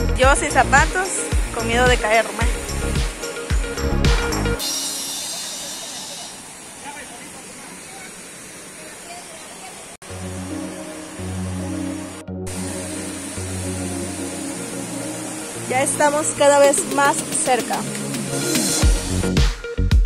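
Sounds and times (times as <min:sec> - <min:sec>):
music with low bass line: 0:00.0 - 0:04.7, 0:17.8 - 0:20.0
river and waterfall rushing: 0:00.0 - 0:18.9.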